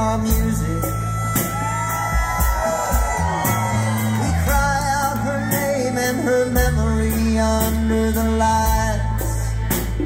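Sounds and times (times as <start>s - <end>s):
drums: 0.0s - 10.0s
electric guitars: 0.0s - 10.0s.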